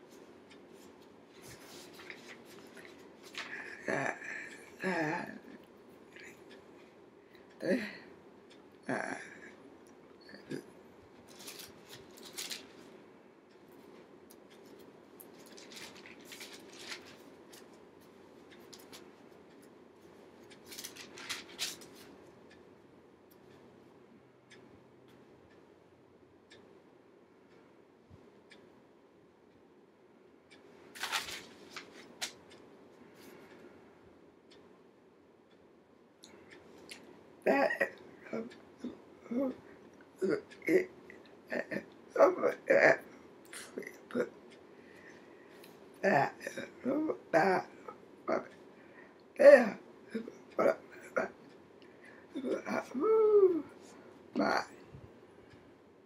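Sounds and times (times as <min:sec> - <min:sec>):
book pages rustling: 0:00.8 - 0:03.6, 0:11.3 - 0:12.9, 0:15.3 - 0:17.7, 0:20.6 - 0:22.1, 0:31.0 - 0:32.4.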